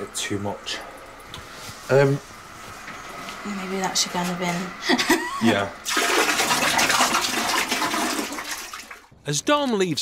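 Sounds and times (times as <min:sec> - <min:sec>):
water rushing in toilet bowl: 0:05.5 - 0:09.1.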